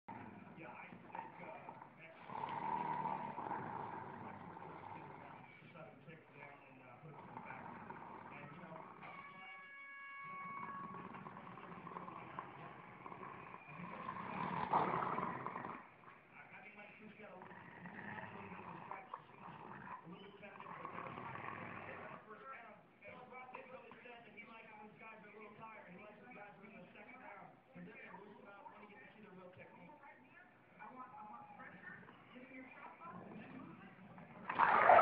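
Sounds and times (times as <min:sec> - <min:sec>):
dogs growling: 0:00.0 - 0:09.4, 0:10.2 - 0:16.3, 0:17.1 - 0:22.3, 0:31.6 - 0:35.0.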